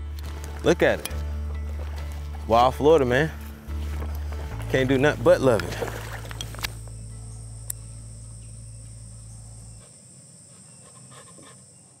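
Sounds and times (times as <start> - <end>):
high-pitched insect chorus: 1.8 - 12.0
sharp tick: 7.6 - 9.0.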